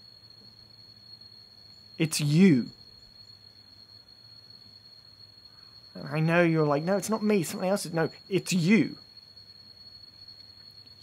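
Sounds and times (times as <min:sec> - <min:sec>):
background hiss: 0:00.0 - 0:11.0
high-pitched insect song: 0:00.0 - 0:11.0.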